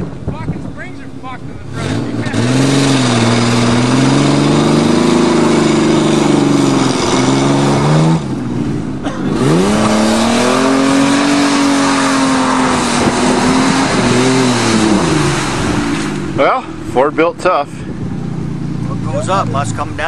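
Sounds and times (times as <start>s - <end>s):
engine revving hard: 1.7s - 20.0s.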